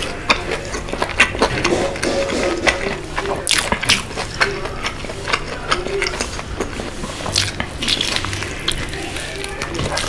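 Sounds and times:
chewing crispy chicken: 0.0s - 10.0s.

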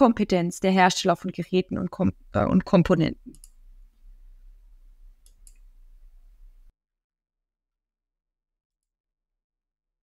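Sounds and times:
low steady hum: 0.0s - 6.7s
faint computer mouse clicks: 3.3s - 3.6s, 5.2s - 5.7s.

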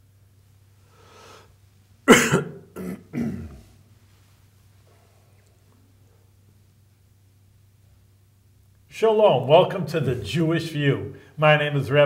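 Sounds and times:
person coughing: 2.0s - 3.7s.

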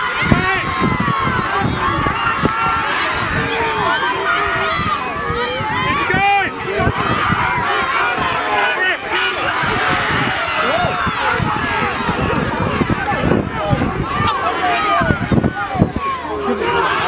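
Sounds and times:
crowd shouting: 0.0s - 17.0s.

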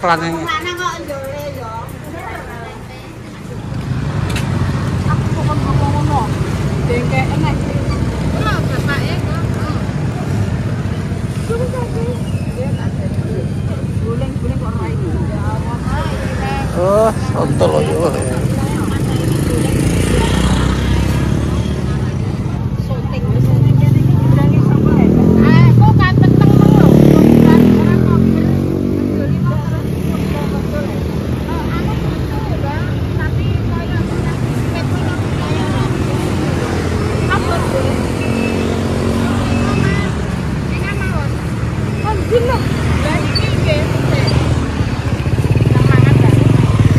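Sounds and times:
people talking: 0.0s - 3.9s, 5.0s - 44.6s, 45.5s - 46.9s
street noise: 0.0s - 46.9s
motorcycle engine passing: 3.2s - 46.9s.

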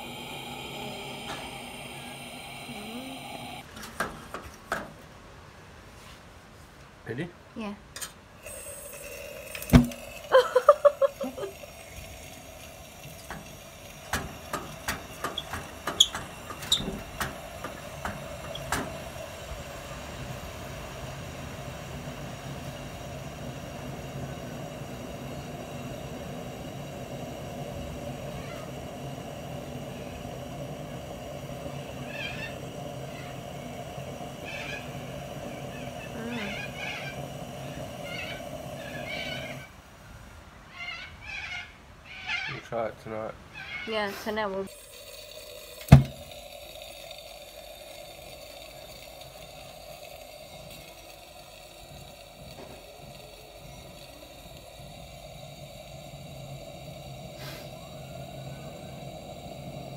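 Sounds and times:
lantern burner hissing: 0.0s - 5.8s, 8.1s - 41.2s, 42.0s - 59.9s.

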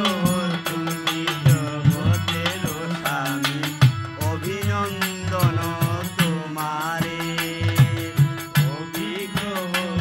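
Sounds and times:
harmonium drone: 0.0s - 10.0s
man singing folk song: 0.0s - 10.0s.

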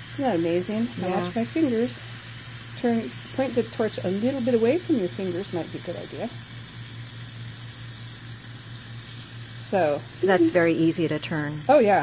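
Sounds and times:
gas torch flame hissing: 0.0s - 12.0s.

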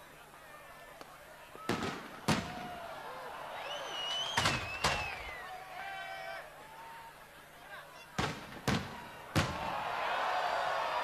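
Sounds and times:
fireworks bangs: 1.6s - 2.8s, 4.4s - 5.2s, 8.2s - 9.8s.

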